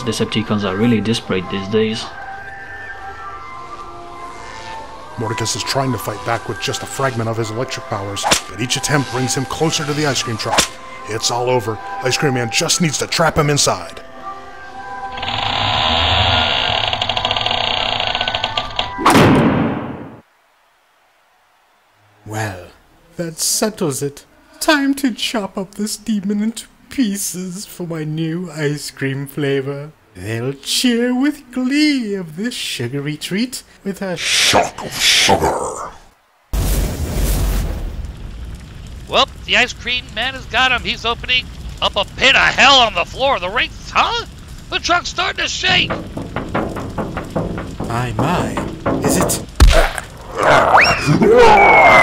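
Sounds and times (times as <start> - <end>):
deep explosion boom and rumble: 36.6 - 50.4
sliding door rattling on track: 45.6 - 49.6
door slamming shut: 45.7 - 50.2.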